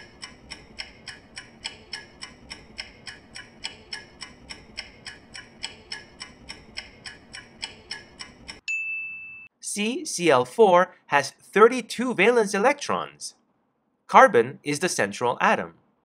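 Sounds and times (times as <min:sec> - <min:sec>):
ticking clock sound effect: 0:00.0 - 0:08.6.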